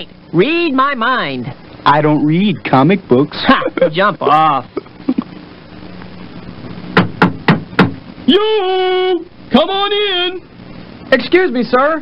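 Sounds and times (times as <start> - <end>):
knocking on door: 6.9 - 8.0.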